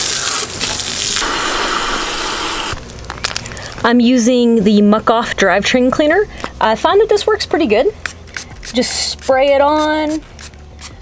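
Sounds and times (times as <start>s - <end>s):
hose nozzle spraying water: 0.0s - 2.8s.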